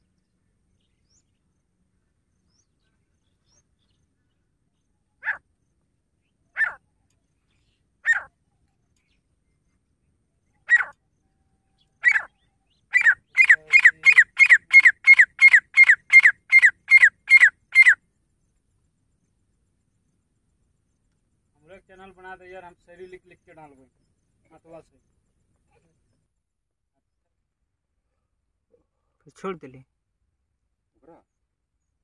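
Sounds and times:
francolin calling: 0.0s - 18.1s.

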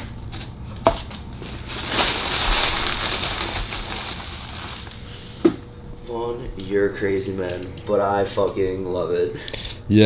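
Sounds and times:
paper wrapper crinkling: 0.3s - 5.2s.

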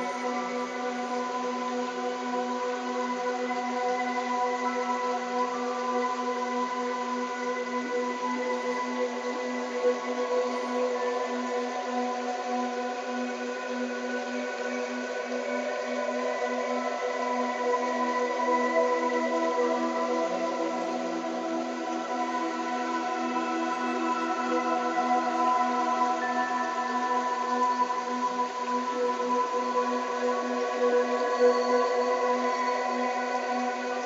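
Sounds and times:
ambient pad: 0.0s - 34.0s.

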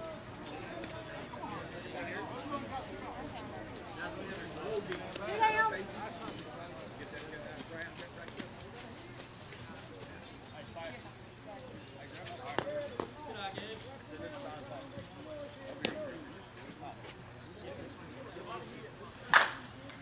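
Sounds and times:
distant voices of players and spectators: 0.0s - 20.0s.

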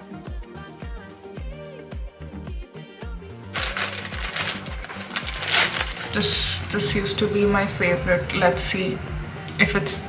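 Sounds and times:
background music with beat: 0.0s - 10.0s
paper wrapper crinkling: 3.5s - 6.9s.

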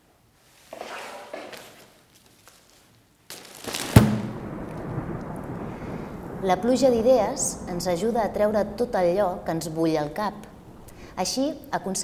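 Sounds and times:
plastic umbrella rustling: 0.5s - 5.1s
umbrella snapping open: 0.8s - 4.5s
rain hissing: 3.7s - 12.0s.

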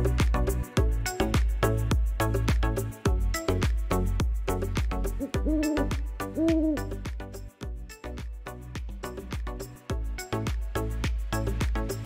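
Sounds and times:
background music with beat: 0.0s - 12.0s
owl hooting: 5.2s - 7.0s.

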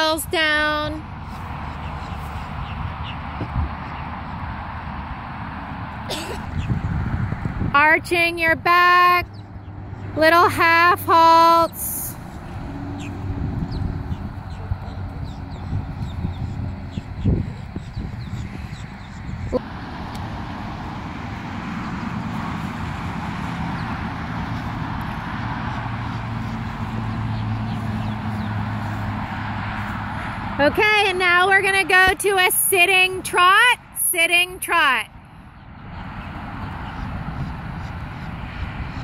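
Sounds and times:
vehicle engine hum: 0.0s - 39.0s.

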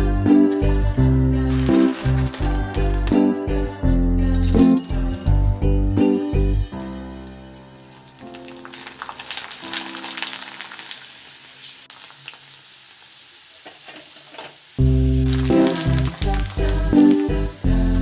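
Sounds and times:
background music: 0.0s - 11.0s, 14.8s - 18.0s
deep-frying crackling sizzle: 0.5s - 3.3s, 6.6s - 18.0s.

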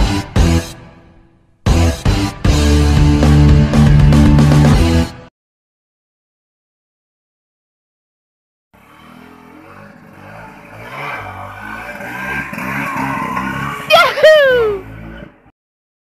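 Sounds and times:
scooter engine revving: 8.8s - 15.5s
loud falling shout: 13.9s - 14.8s.

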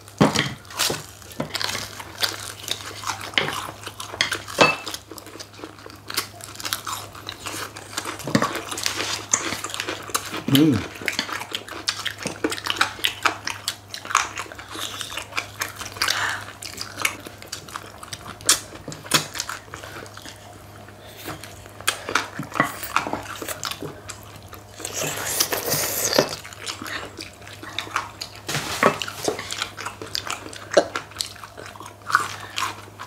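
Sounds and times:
crunching and chewing fried chicken: 0.0s - 33.0s.

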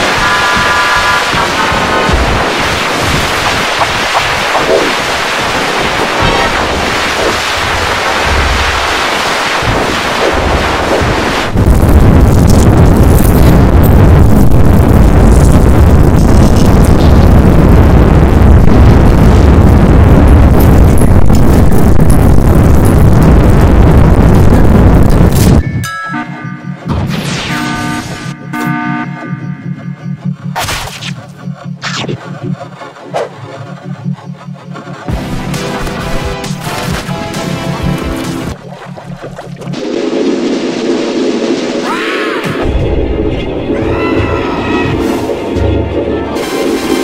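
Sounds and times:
harsh distorted noise: 0.0s - 25.6s, 26.8s - 47.0s
low pulsing throb: 0.0s - 25.6s, 26.2s - 36.2s, 37.4s - 47.0s
loud low booms: 9.6s - 25.6s.

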